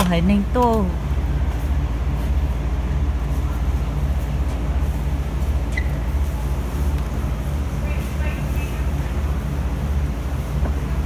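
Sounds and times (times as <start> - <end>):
machinery droning: 0.0 - 11.0.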